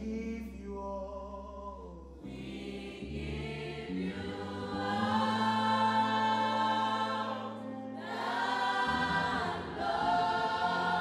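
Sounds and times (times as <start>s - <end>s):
congregation singing worship song: 2.2s - 11.0s.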